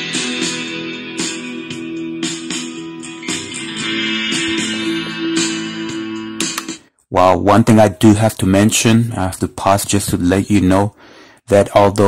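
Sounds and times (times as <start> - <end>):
strummed guitar music from radio speaker: 0.0 - 6.9.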